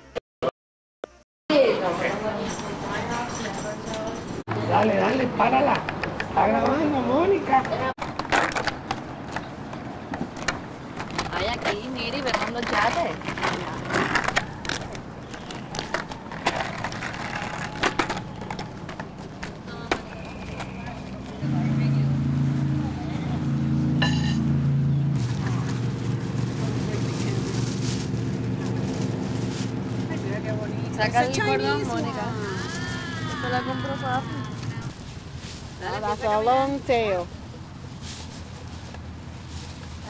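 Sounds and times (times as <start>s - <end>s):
indistinct voices talking: 11.3s - 23.7s, 30.0s - 35.0s.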